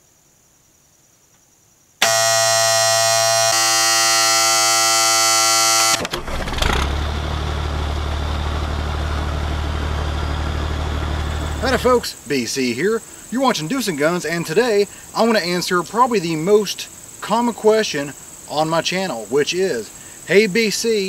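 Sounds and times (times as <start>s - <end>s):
loud warning buzzer: 2.0s - 6.2s, 11.2s - 12.0s
truck engine idling: 5.2s - 12.1s.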